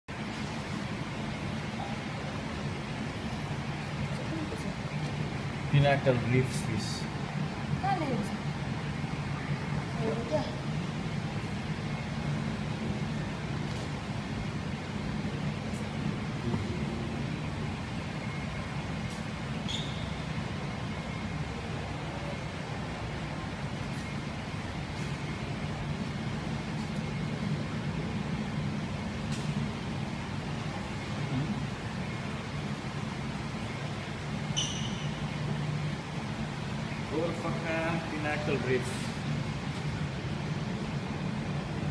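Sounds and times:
low machine hum: 0:00.1 - 0:41.9.

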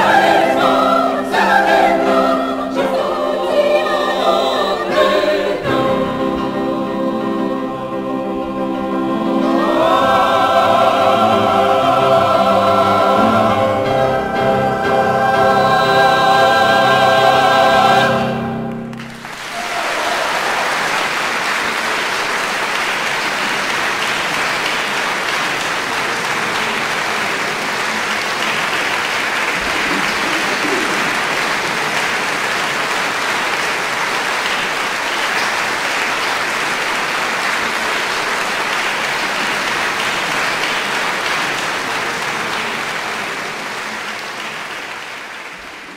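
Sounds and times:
mixed choir holding a chord: 0:00.0 - 0:19.3, 0:20.2 - 0:44.8
audience applause: 0:18.9 - 0:45.9.

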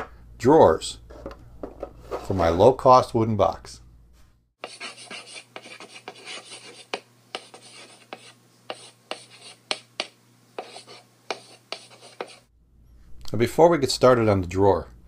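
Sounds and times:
chalk scratching on chalkboard: 0:04.6 - 0:12.5.

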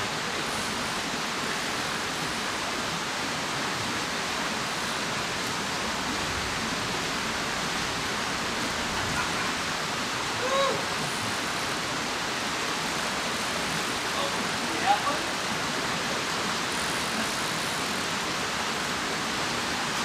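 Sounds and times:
stream rushing over rocks: 0:00.0 - 0:20.0.

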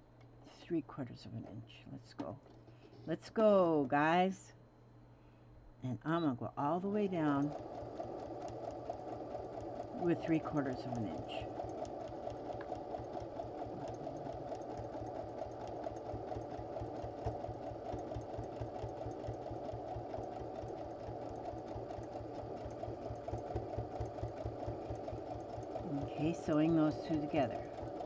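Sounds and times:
sewing machine stitching: 0:07.0 - 0:28.0.

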